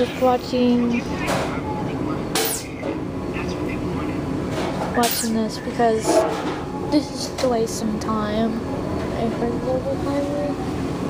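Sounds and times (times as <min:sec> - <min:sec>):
faint voices: 0:00.0 - 0:10.6
steady background hum: 0:00.0 - 0:11.0.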